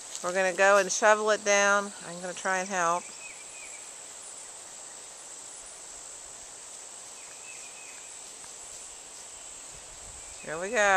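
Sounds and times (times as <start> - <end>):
insect chorus: 0.0 - 10.9.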